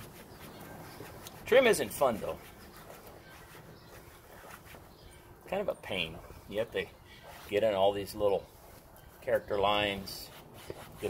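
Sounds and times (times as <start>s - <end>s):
pad rubbing on plastic: 0.0s - 5.0s, 7.2s - 9.0s, 9.8s - 11.0s.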